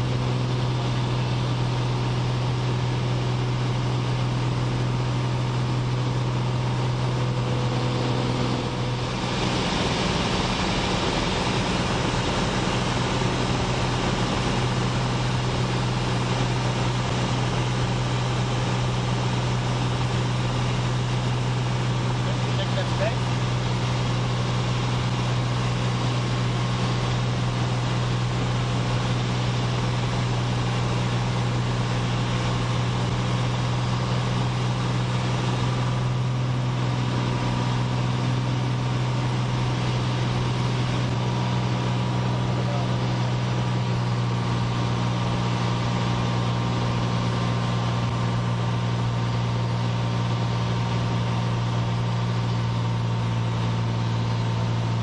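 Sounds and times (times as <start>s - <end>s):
airplane engine and propeller drone: 0.0s - 55.0s.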